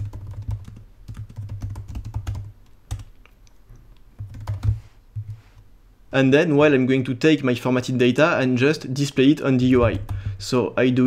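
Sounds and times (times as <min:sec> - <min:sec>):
typing on computer keyboard: 0:00.0 - 0:03.2, 0:04.2 - 0:05.4.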